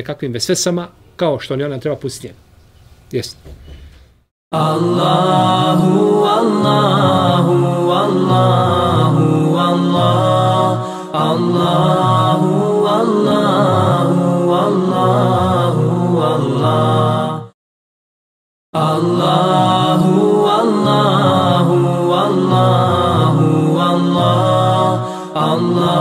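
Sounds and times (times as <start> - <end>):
voices chanting in harmony: 4.6 - 17.6, 18.8 - 26.0.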